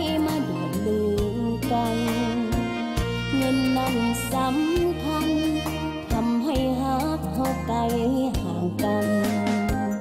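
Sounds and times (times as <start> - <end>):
woman singing pop song: 0.0 - 10.0.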